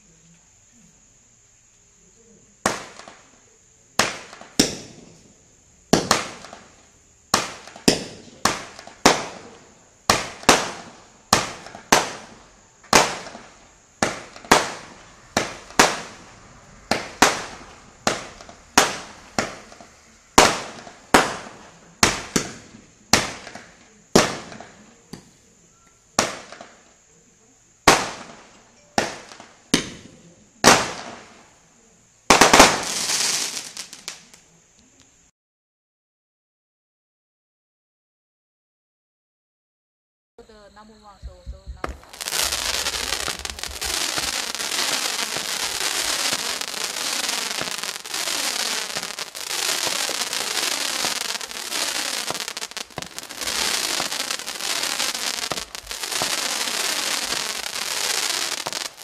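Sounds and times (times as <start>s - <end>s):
firework bangs echoing: 2.6s - 3.2s, 4.0s - 5.3s, 5.9s - 6.7s, 7.3s - 25.3s, 27.8s - 31.5s, 32.3s - 34.3s, 41.8s - 59.0s
loud noisy firework burst: 4.0s - 24.8s, 27.8s - 34.4s, 41.9s - 59.0s.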